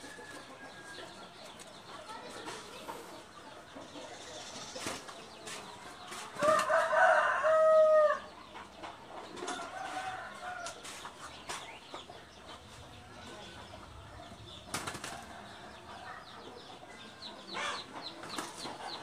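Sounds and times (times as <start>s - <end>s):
rooster crowing: 6.4s - 8.3s.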